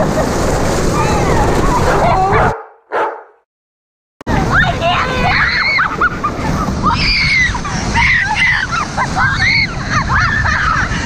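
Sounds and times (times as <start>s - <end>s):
wind and water rushing: 0.0s - 2.6s, 4.3s - 11.0s
girls laughing and squealing: 4.4s - 11.0s.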